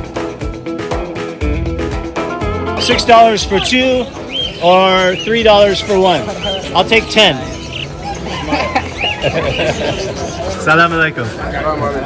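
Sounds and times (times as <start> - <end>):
people's voices: 2.3 - 12.0
caged birds calling: 2.8 - 12.0.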